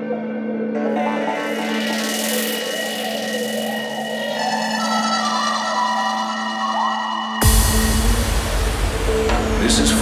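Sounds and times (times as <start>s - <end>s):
synthesizer drones and pads: 0.0s - 10.0s.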